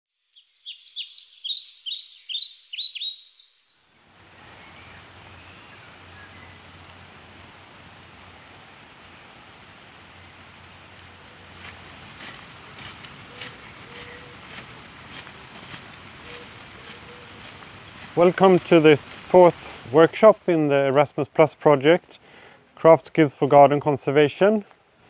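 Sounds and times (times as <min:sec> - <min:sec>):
bird chirping: 0:00.1 - 0:06.6, 0:13.2 - 0:14.4
outdoor hiss: 0:00.3 - 0:25.0.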